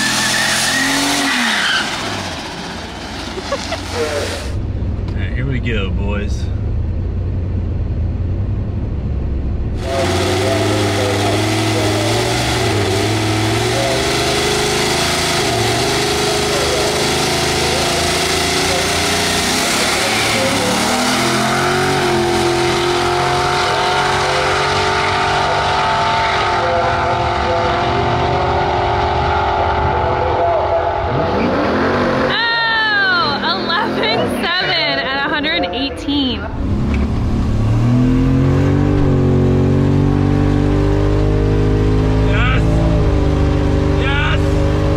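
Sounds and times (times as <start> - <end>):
car engine accelerating through gears: 0.0 - 35.8, 36.4 - 44.9.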